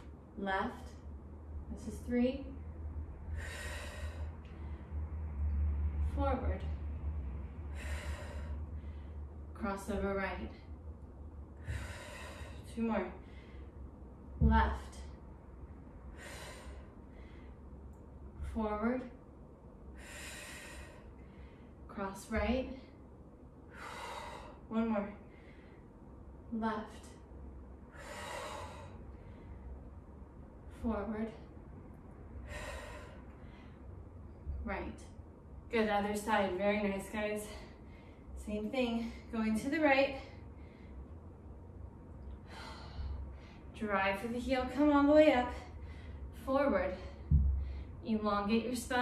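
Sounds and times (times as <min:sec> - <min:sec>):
low steady hum: 0:00.0 - 0:49.0
woman exhaling: 0:11.6 - 0:12.7.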